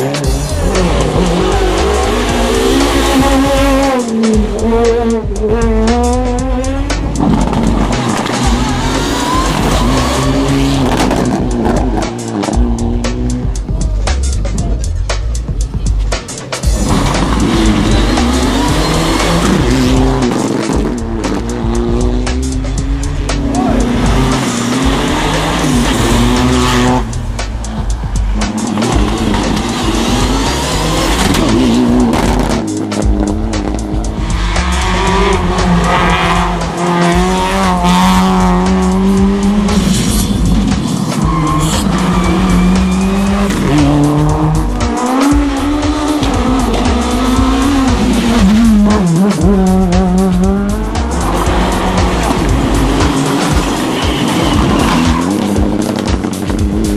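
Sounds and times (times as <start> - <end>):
background music: 0.0 - 56.9
car engines revving: 0.0 - 56.9
tyres squealing: 40.8 - 44.1.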